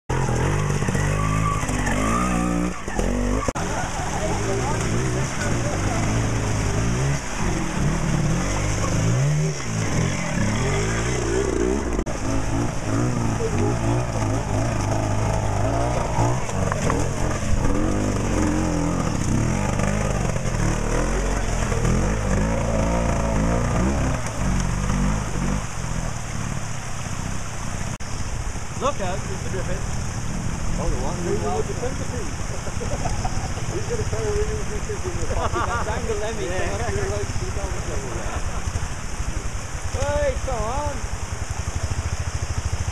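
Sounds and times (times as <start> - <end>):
motorcycle engines revving: 0.1 - 42.9.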